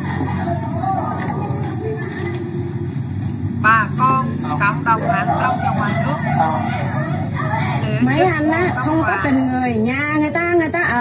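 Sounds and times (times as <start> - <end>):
high-pitched voices crying out: 3.6 - 6.2, 7.8 - 9.4.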